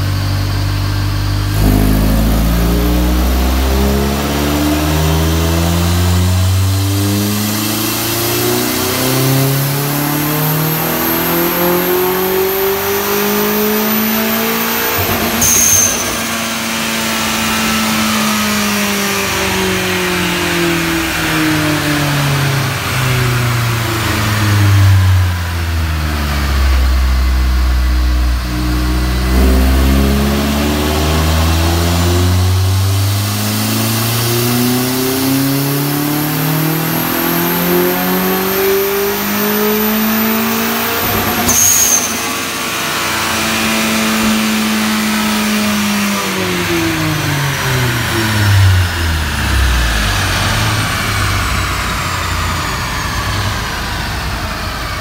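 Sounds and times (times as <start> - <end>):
high turbo whine: 0.0 - 55.0
turbocharged engine revving: 0.0 - 55.0
sharp burst on throttle close: 1.3 - 20.3.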